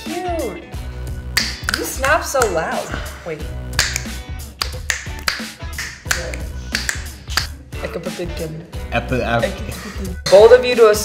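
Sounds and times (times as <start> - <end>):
hip-hop funk music: 0.1 - 7.7
finger snaps: 1.3 - 2.7, 3.7 - 7.5.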